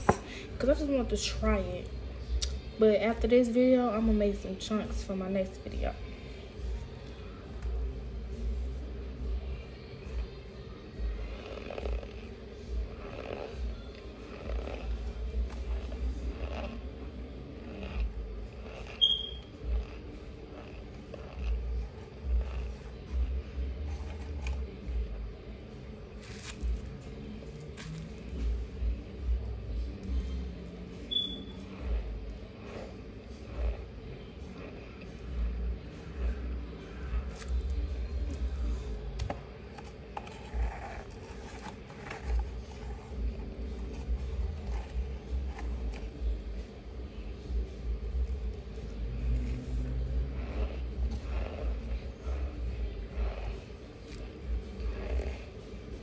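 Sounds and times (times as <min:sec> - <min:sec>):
chewing cornstarch crunches: 0:11.2 - 0:12.3, 0:13.0 - 0:17.0, 0:17.6 - 0:21.6
high squeaks: 0:18.9 - 0:19.5, 0:31.1 - 0:31.6.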